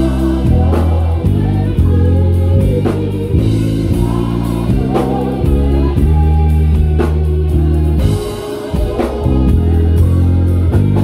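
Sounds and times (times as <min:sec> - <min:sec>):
electric bass low notes: 0:00.0 - 0:11.0
gospel music with singing: 0:00.0 - 0:11.0.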